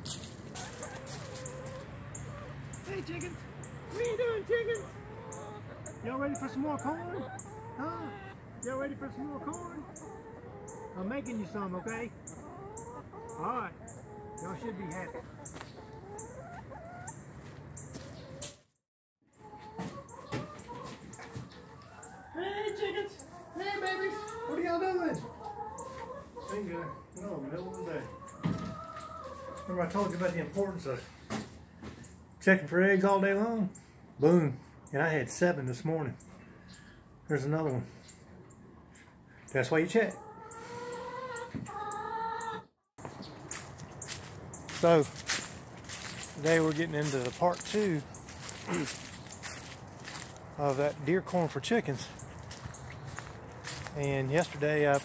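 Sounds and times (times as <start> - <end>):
hens clucking: 0.0 - 18.6, 19.3 - 55.0.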